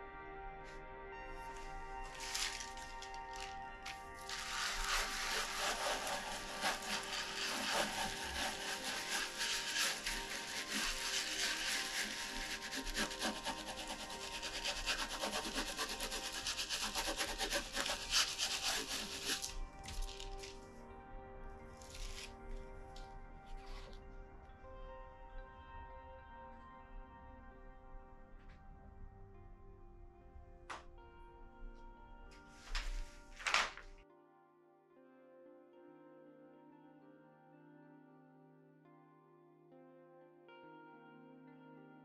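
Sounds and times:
background music: 0.0s - 42.0s
baren rubbing over paper: 1.5s - 20.6s.

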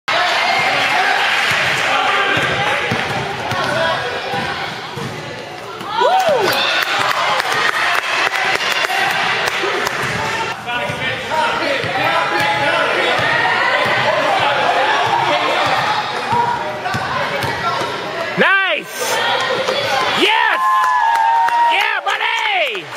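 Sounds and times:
spectators chattering: 0.1s - 22.9s.

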